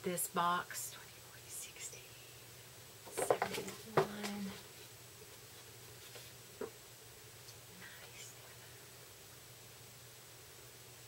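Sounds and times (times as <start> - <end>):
woman whispering: 0.0 - 2.5, 3.4 - 4.6, 7.8 - 8.8.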